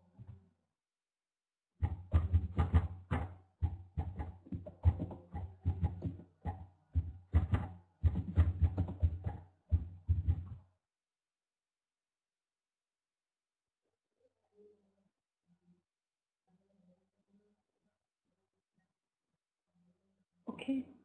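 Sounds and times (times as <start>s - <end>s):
muffled knocks: 1.8s - 10.6s.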